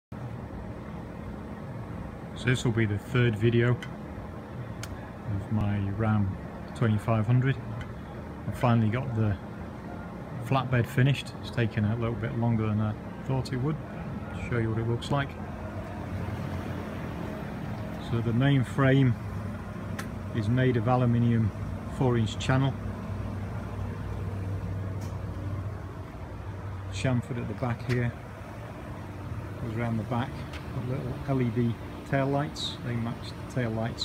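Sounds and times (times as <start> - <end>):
diesel engine idling: 0.2 - 34.0.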